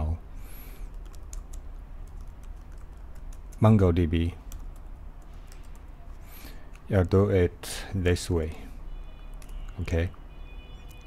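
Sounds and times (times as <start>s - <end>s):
keyboard keystrokes: 0.9s - 3.6s
person speaking: 2.9s - 4.6s, 5.7s - 8.8s, 9.8s - 10.2s.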